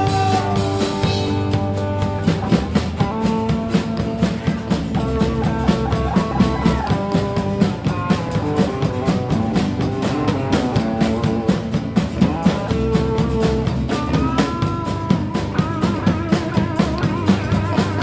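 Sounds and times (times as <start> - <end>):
drum kit beat: 0.0 - 18.0
electric guitar: 0.0 - 18.0.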